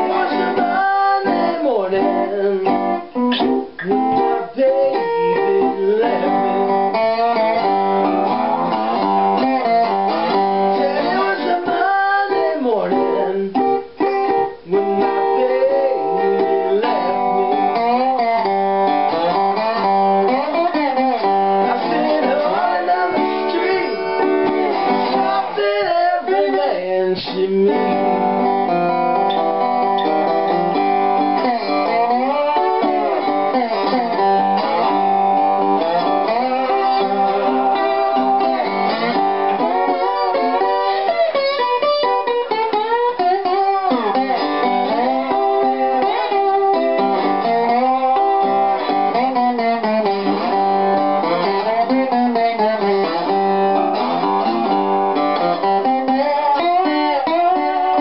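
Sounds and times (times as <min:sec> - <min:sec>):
picked guitar accompaniment: 0:00.0 - 0:58.0
slide guitar notes gliding: 0:00.0 - 0:58.0.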